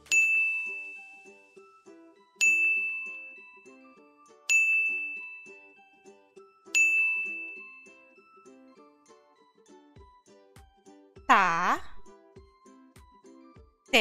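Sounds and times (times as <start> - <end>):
bouncy background music: 0.0 - 14.0
bright chime dinging: 2.4 - 3.5, 4.5 - 5.8, 6.8 - 7.9.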